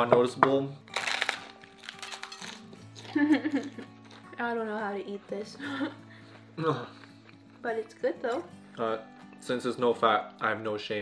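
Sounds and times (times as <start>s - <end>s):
background music: 0.0s - 11.0s
taco shells crunching: 0.9s - 3.4s.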